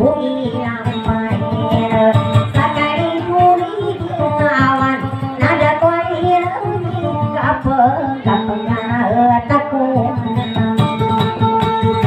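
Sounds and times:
people singing: 0.0 - 12.0
plucked guitar: 0.0 - 12.0.

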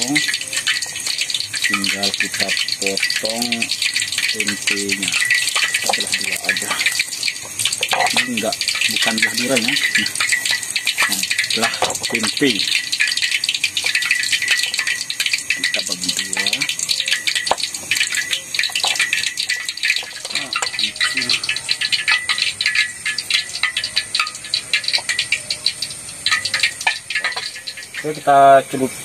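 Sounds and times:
dense high crackle: 0.0 - 29.0.

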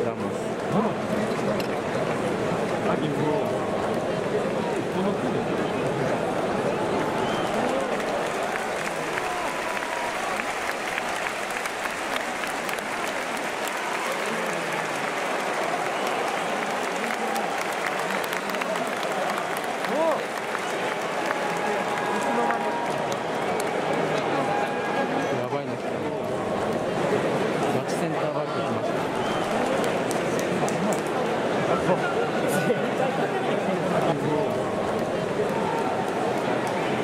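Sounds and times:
scattered clapping: 0.0 - 5.2, 5.8 - 27.8, 29.0 - 31.5, 32.8 - 37.0
crowd voices talking: 0.0 - 37.0.

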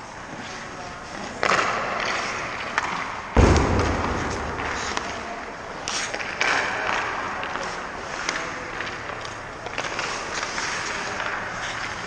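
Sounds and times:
skate blades scraping ice: 0.0 - 3.2, 4.2 - 12.0.

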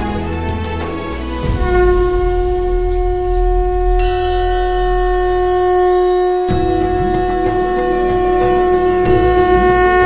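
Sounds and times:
low rumble: 1.4 - 9.9
conch shell blown: 1.4 - 10.0.

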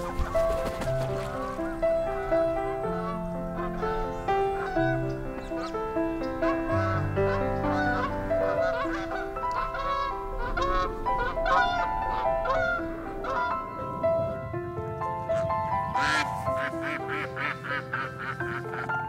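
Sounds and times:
bird calls: 0.0 - 19.0
slow solo piano: 0.0 - 19.0.

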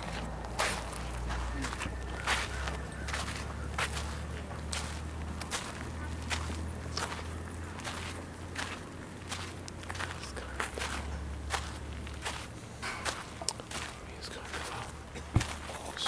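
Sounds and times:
footsteps on garden path: 0.0 - 16.0
steady low hum: 0.0 - 16.0.

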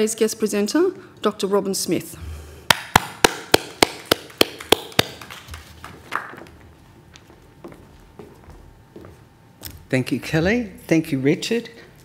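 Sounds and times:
person clapping: 2.7 - 6.6.

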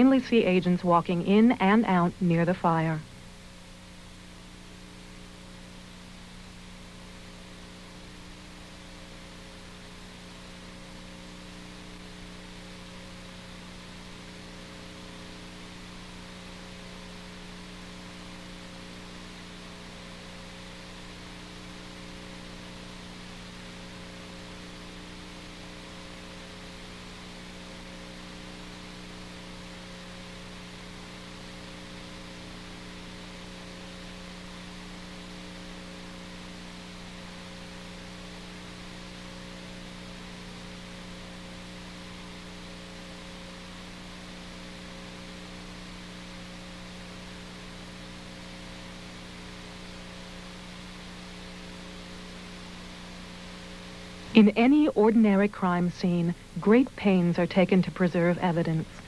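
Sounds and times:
electrical hum: 0.0 - 59.0
tape hiss: 0.0 - 59.0.

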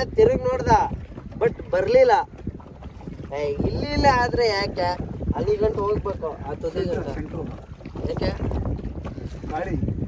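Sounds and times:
people talking indistinctly: 0.0 - 9.9
wind rumbling on microphone: 0.0 - 10.0.

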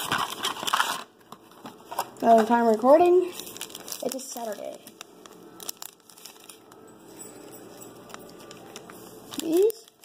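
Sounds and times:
foil wrappers crinkling: 0.0 - 10.0.

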